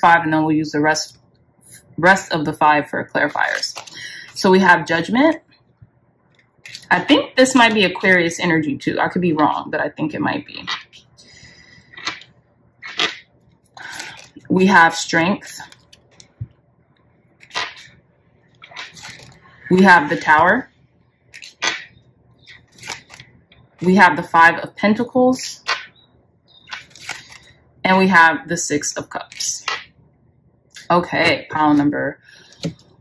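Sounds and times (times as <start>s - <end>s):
cards scraping and flicking: 21.4s - 21.9s, 22.5s - 23.3s, 26.7s - 27.5s.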